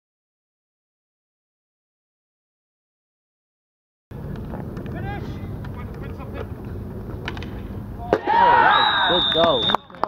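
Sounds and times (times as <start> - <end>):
distant players shouting: 7.8 - 10.0.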